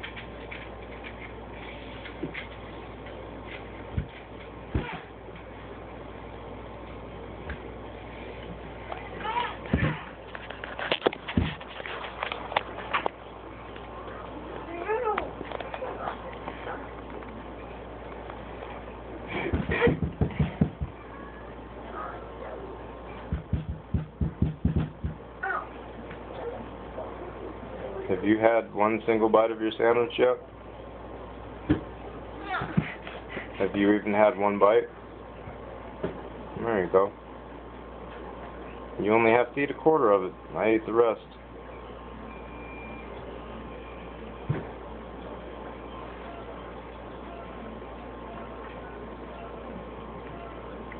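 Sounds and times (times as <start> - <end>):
faint hum: 0.0 - 50.9.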